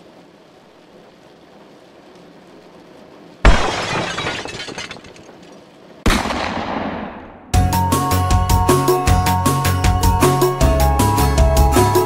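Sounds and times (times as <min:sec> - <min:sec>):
faint hiss: 0:00.0 - 0:03.5
loud crash of smashing: 0:03.4 - 0:05.4.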